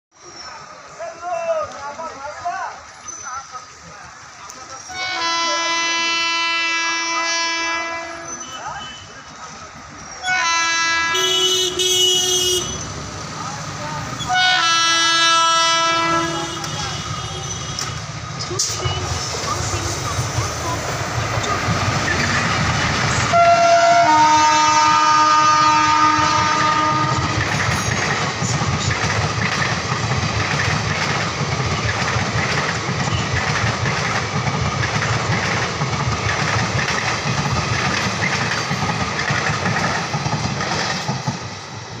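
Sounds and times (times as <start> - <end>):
train horn: 4.9 - 9.2, 10.2 - 12.9, 14.2 - 18.0, 23.3 - 27.9
train wheels clattering over rail joints: 16.5 - 23.4, 25.6 - 41.7.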